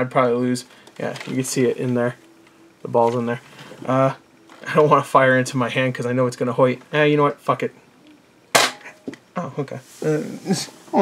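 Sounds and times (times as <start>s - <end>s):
foam blaster shot: 8.6s - 8.9s.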